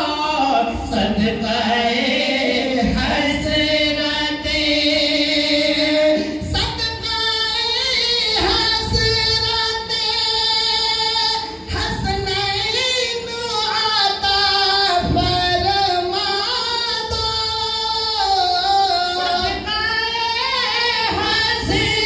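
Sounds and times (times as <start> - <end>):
men singing unaccompanied: 0.0 - 12.9, 13.5 - 22.0.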